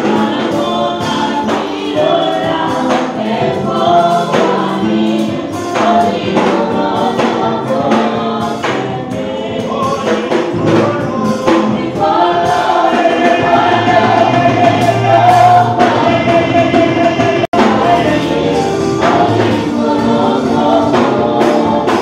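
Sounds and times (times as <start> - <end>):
percussion: 0.0 - 22.0
women's choir singing: 0.0 - 22.0.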